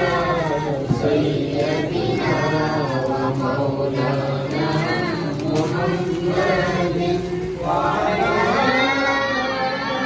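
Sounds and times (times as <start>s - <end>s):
voices chanting in unison: 0.0s - 10.0s.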